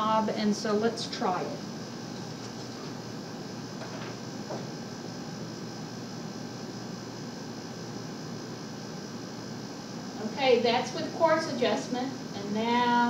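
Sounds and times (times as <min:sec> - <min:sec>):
room hiss: 0:00.0 - 0:13.0.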